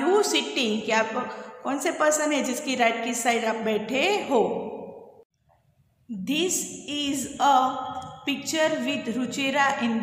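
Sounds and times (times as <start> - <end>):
woman's voice: 0.0 - 4.9, 6.1 - 10.0.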